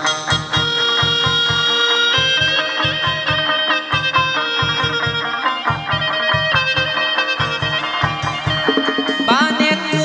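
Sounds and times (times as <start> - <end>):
steady drum beat: 0.0 - 10.0
sustained melody line: 0.0 - 10.0.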